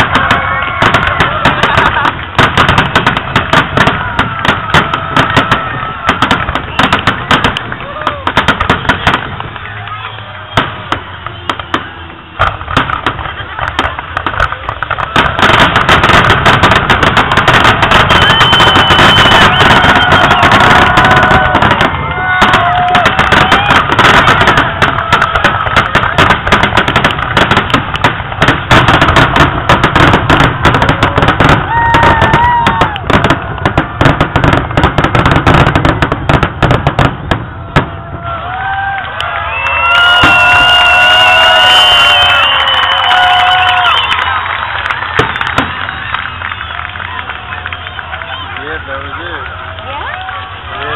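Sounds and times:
crowd cheering and whooping: 0:00.0 - 0:50.9
fireworks bangs and crackling: 0:00.0 - 0:50.9.

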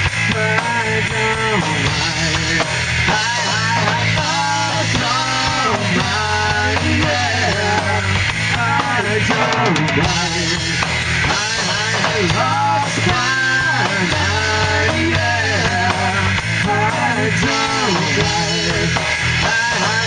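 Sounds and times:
drum kit: 0:00.0 - 0:20.0
electric bass: 0:00.0 - 0:20.0
electric guitar: 0:00.0 - 0:20.0
vocals singing into microphones: 0:00.1 - 0:20.0.

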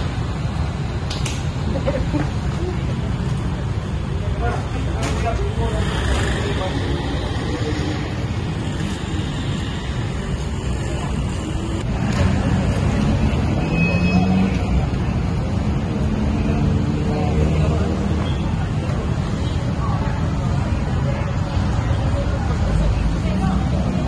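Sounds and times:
road traffic rumble: 0:00.0 - 0:24.0
people talking: 0:01.7 - 0:09.2, 0:10.0 - 0:24.0.

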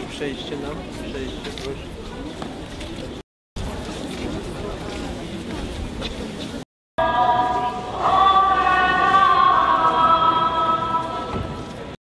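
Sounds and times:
choir singing a hymn: 0:07.0 - 0:11.7.

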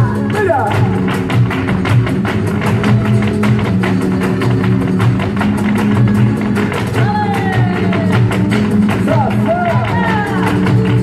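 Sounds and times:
acoustic guitar playing: 0:00.0 - 0:11.0.

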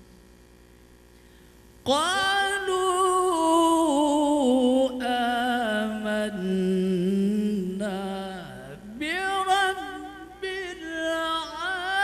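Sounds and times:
man chanting melodically: 0:01.9 - 0:12.0.

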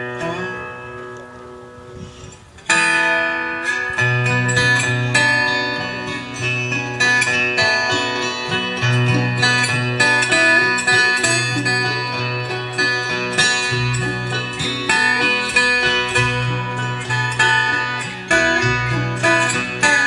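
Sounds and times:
banjo: 0:00.0 - 0:01.6, 0:02.6 - 0:20.0
acoustic guitar: 0:00.0 - 0:20.0
resophonic guitar: 0:00.0 - 0:20.0
upright bass walking line: 0:04.0 - 0:20.0.

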